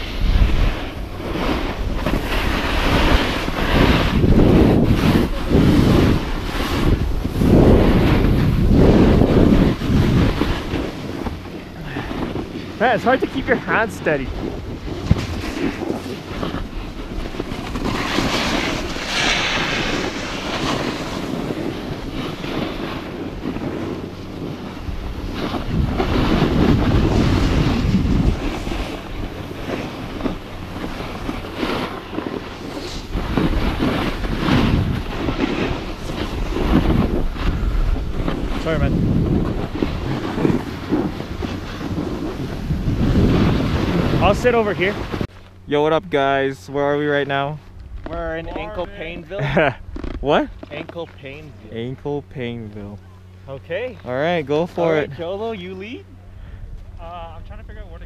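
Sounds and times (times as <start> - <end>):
snowboard edge scraping snow: 0.0 - 45.3, 46.1 - 53.0, 53.8 - 56.0
wind buffeting microphone: 0.0 - 58.0.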